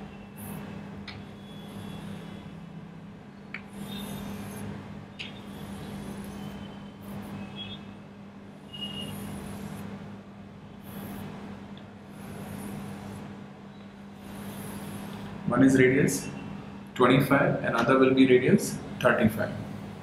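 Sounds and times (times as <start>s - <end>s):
steady low hum: 0.0s - 20.0s
chalk scraping on blackboard: 3.7s - 4.7s, 5.4s - 7.4s, 8.8s - 9.9s.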